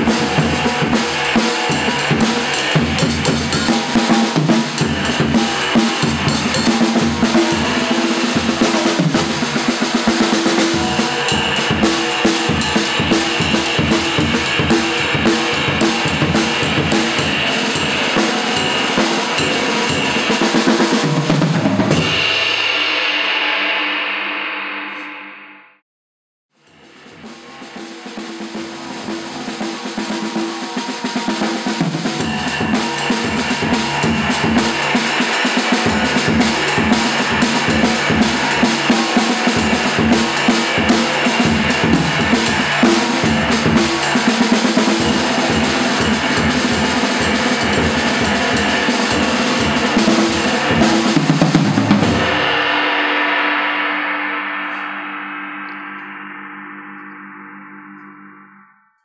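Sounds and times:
jazz drum kit played with sticks: 0.0s - 23.0s, 26.6s - 53.5s.

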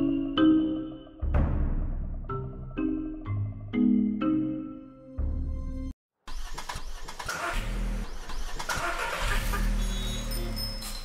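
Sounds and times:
music: 0.0s - 6.0s
car engine running roughly: 6.3s - 10.6s.

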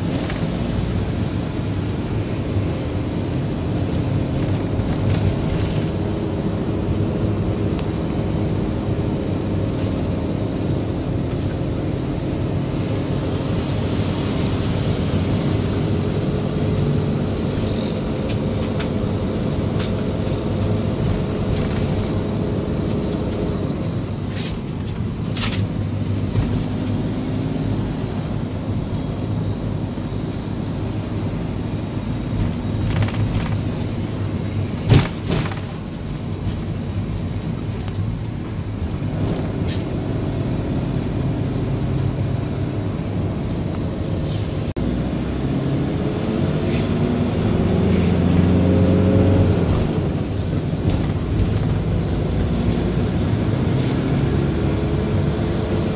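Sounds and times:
motorhome engine: 0.0s - 55.9s
road noise: 0.0s - 55.9s.

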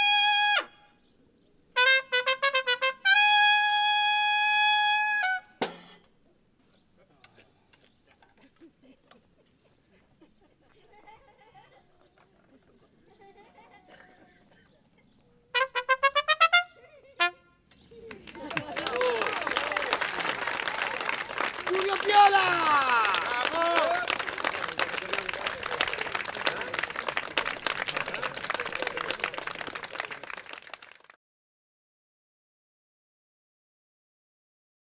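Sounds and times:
audience applause: 18.0s - 31.2s.

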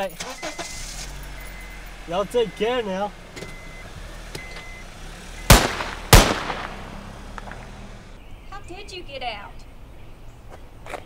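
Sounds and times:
loud sharp bangs: 5.4s - 8.1s.

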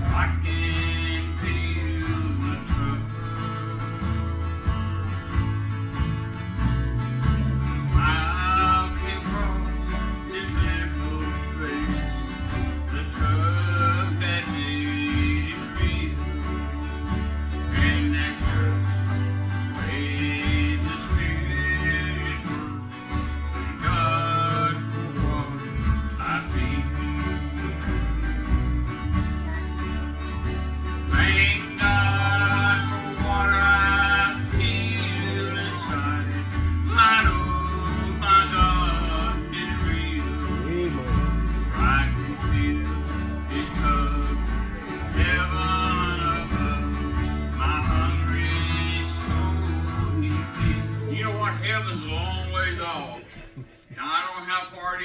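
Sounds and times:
acoustic guitar: 0.0s - 55.0s
man singing: 0.0s - 55.0s.

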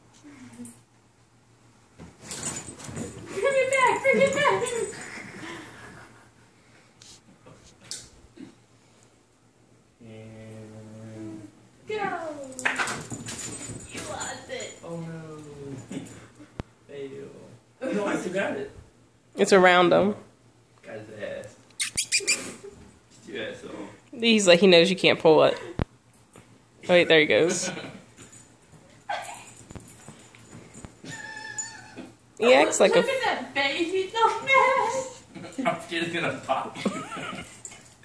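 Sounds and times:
puppy whining: 21.8s - 22.8s, 30.7s - 32.3s.

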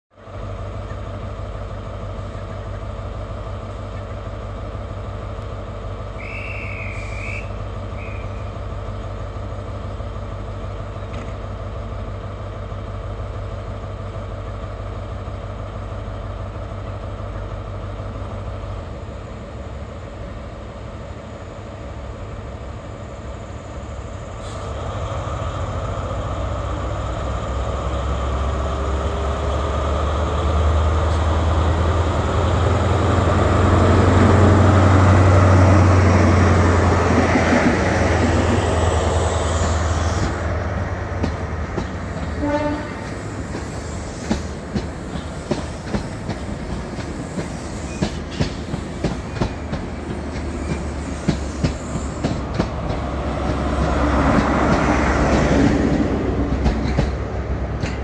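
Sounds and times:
diesel train engine: 0.1s - 58.0s
train coaches rolling by: 0.1s - 58.0s.

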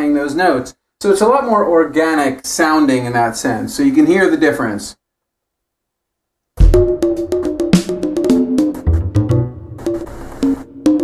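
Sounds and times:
kick drum: 6.6s - 7.8s
looping melody: 6.6s - 11.0s.

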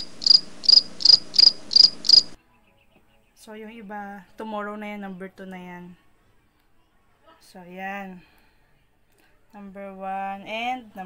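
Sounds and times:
cricket chirping: 0.0s - 2.4s.

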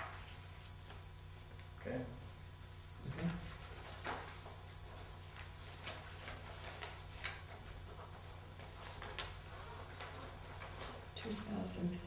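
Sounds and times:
low steady hum: 0.0s - 12.0s
paper rustling and writing: 3.1s - 11.7s.

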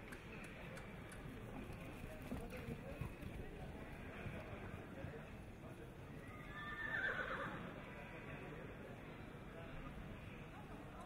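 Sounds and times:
horse whinnying: 6.4s - 7.6s.

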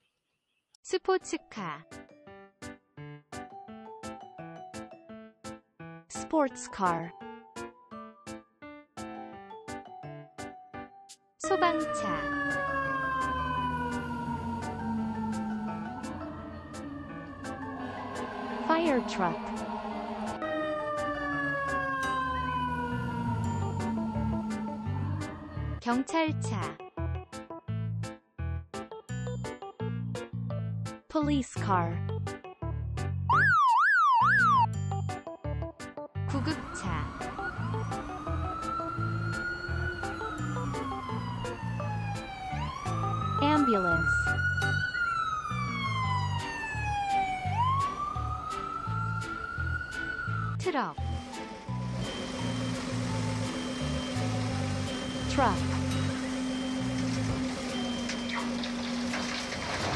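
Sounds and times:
fire engine siren wailing: 11.4s - 25.8s, 33.3s - 34.7s, 36.3s - 59.9s.

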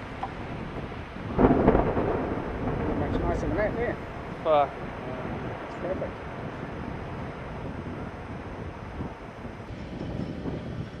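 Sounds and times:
distant blast rumble: 0.0s - 10.0s
wind on microphone: 0.0s - 11.0s.

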